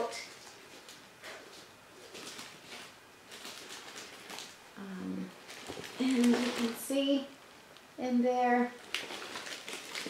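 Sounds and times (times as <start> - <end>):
paper rustling and crinkling: 0.2 - 7.2, 8.8 - 10.0.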